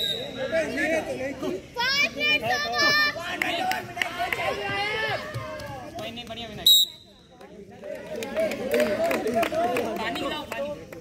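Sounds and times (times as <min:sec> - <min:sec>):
young players calling and shouting: 0:00.0 - 0:11.0.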